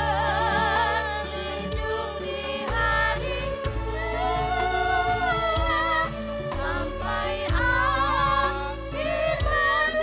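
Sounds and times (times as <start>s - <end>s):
band with keyboard and bass: 0.0s - 10.0s
women singing through a pa: 0.0s - 10.0s.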